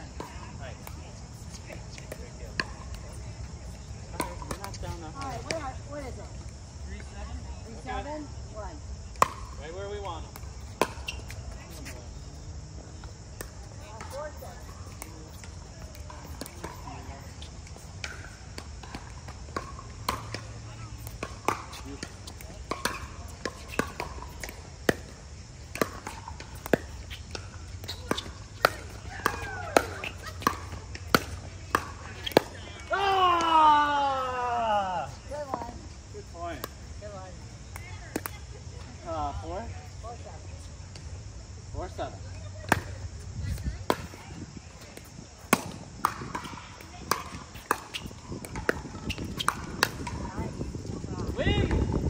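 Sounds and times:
pickleball paddles hitting ball: 4.1 - 5.6, 9.2 - 11.4, 14.9 - 34.8, 42.6 - 43.0, 43.8 - 50.6.

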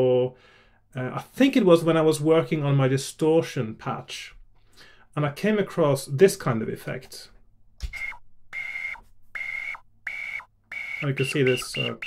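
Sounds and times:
synthesizer breathy whistle-like notes: 8.0 - 12.0.

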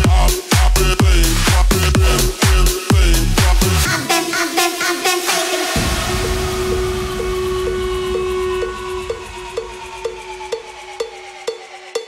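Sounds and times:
low rumbling noise: 5.8 - 11.8
whistle-like held synth note: 5.8 - 12.0.

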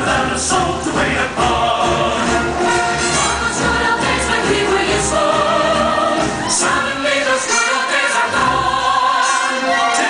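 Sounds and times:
chorus singing with musical backing: 0.0 - 10.0.

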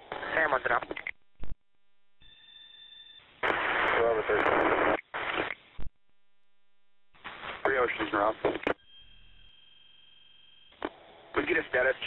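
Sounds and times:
radio hiss: 0.0 - 1.0, 3.4 - 5.9, 7.2 - 8.8, 10.8 - 12.0
radio squelch burst: 3.4 - 5.9
steady high tone: 8.8 - 10.8.

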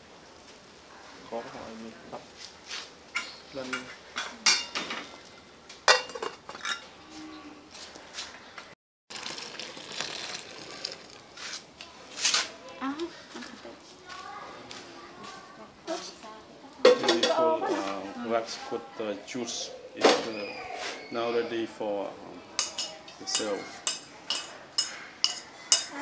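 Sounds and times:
metal pot and lid clanking: 5.9 - 6.9, 16.9 - 17.5, 22.6 - 26.0.

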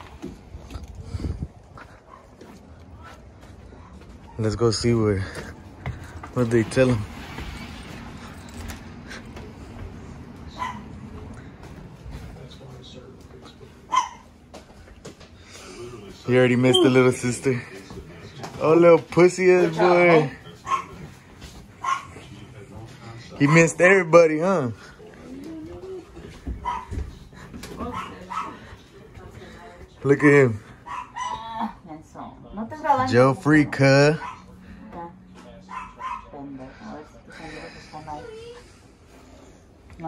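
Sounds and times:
dog barking: 10.5 - 10.9, 13.9 - 14.3, 20.6 - 21.1, 21.8 - 22.2, 26.6 - 27.1, 27.8 - 28.6, 30.8 - 31.5, 34.1 - 34.5, 35.6 - 36.6
dog whining: 16.7 - 17.2.

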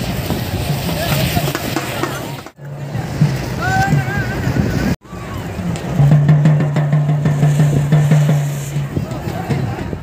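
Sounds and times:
fountain firework rumbling: 0.0 - 10.0.

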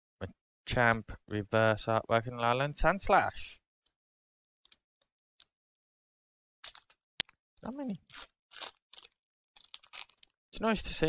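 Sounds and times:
foil wrapper crinkling: 6.6 - 7.0, 7.6 - 10.4.

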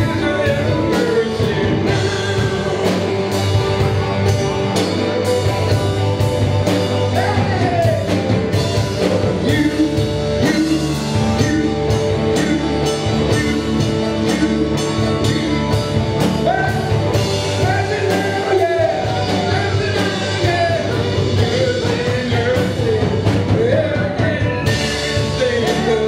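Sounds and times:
person singing: 0.0 - 3.9, 7.1 - 26.0
drum kit beat: 0.0 - 26.0
electric guitars: 0.0 - 26.0.

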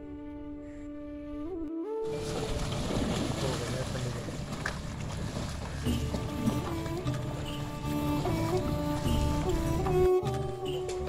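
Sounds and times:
flute melody: 0.0 - 3.0, 5.9 - 11.0
animals splashing in water: 2.0 - 10.5
steady rushing water: 2.0 - 11.0.

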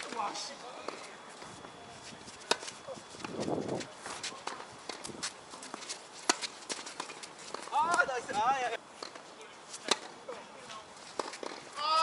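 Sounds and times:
tennis ball struck by rackets: 9.8 - 10.1, 11.2 - 11.7
person calling out: 11.8 - 12.0.

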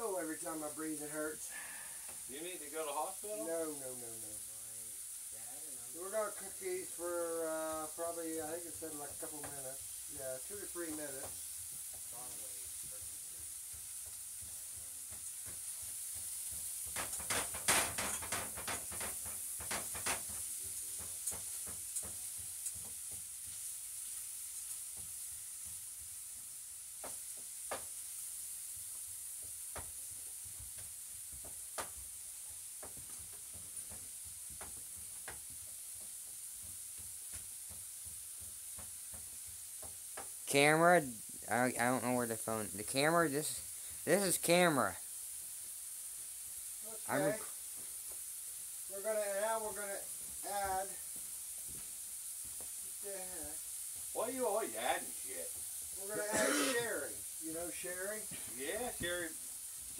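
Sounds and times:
food sizzling in a frying pan: 0.0 - 59.9.

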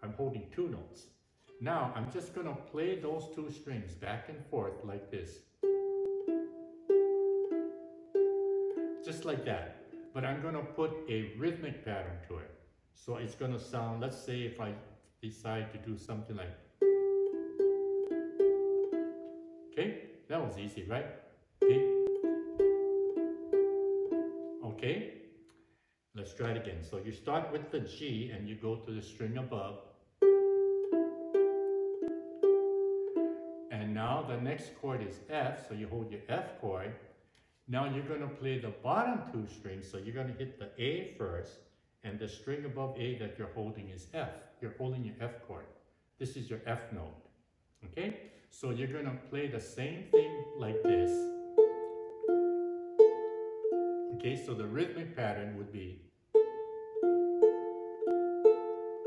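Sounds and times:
ukulele notes plucked: 5.6 - 11.4, 16.8 - 19.8, 21.6 - 24.8, 30.2 - 34.4, 50.0 - 55.7, 56.3 - 59.0.

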